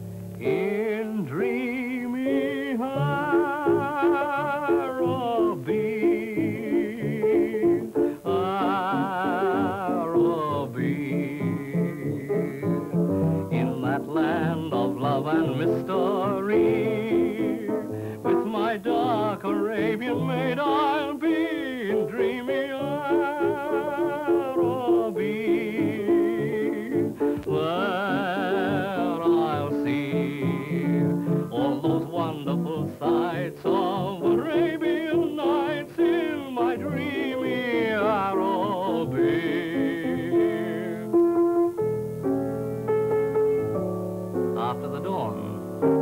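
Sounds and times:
piano chords: 0.0s - 46.0s
man singing with vibrato: 0.4s - 41.3s.

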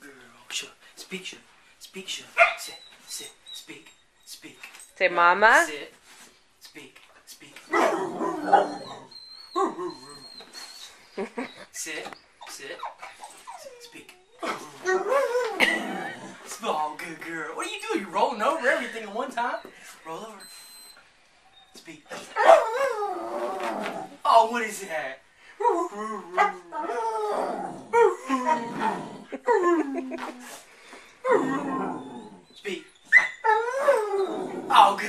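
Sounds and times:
dog whining: 7.7s - 16.3s, 20.4s - 24.2s, 25.6s - 35.0s
dog howl-like vocalizing: 22.4s - 24.1s, 25.7s - 30.1s, 33.4s - 34.7s.

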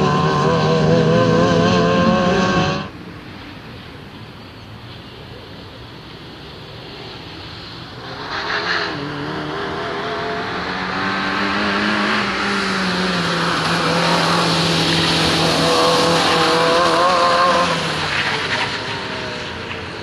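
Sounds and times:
rally car engine revving: 0.0s - 2.9s, 8.0s - 19.8s.

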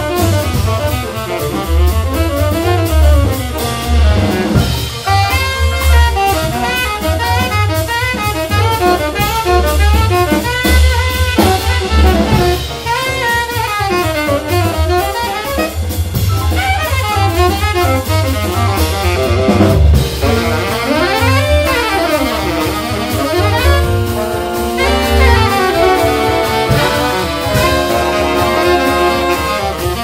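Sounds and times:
bass: 0.0s - 30.0s
drum kit: 0.0s - 30.0s
tenor saxophone solo: 0.0s - 30.0s.

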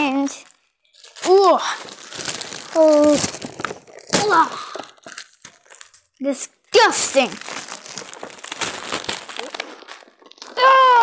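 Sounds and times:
wrapping paper crinkling: 0.0s - 11.0s.

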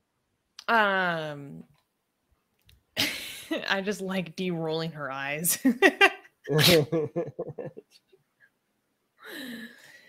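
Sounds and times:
person laughing: 6.5s - 7.8s.

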